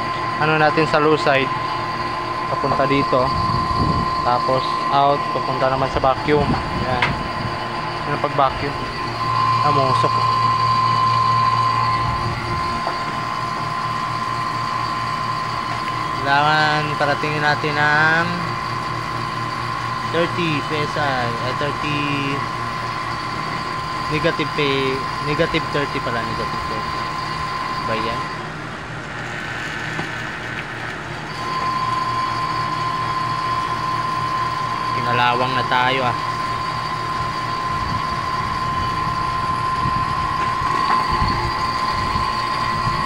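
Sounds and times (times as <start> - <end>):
high whine: 0.0 - 43.0
vacuum pump humming: 0.0 - 43.0.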